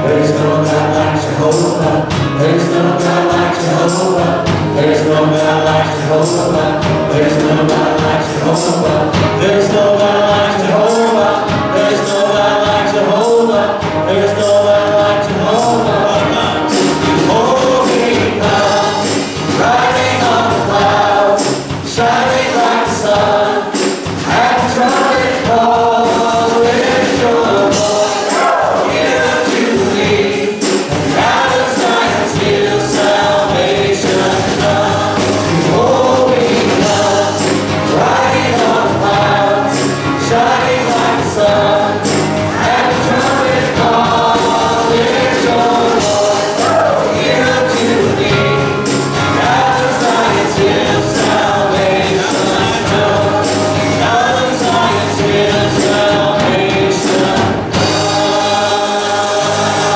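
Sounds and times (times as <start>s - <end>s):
group singing praise song: 0.0s - 59.9s
instrumental backing with beat: 0.0s - 59.9s.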